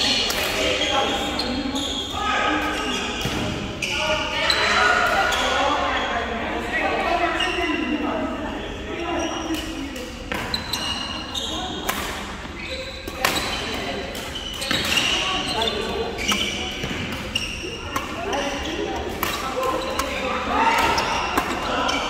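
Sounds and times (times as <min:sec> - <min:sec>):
voices chattering in a hall: 0:00.0 - 0:22.0
shoes squeaking on floor: 0:10.4 - 0:11.8, 0:12.4 - 0:22.0
racket hitting shuttlecock: 0:13.1 - 0:22.0.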